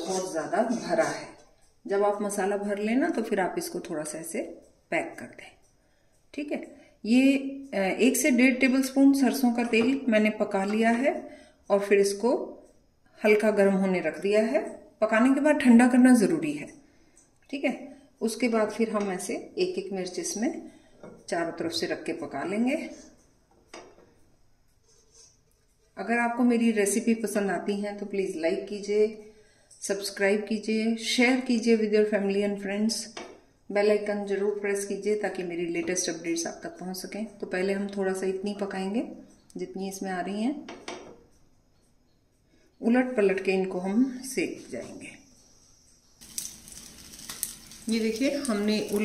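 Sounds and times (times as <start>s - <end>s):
chillies sizzling in oil: 45.7s - 49.0s.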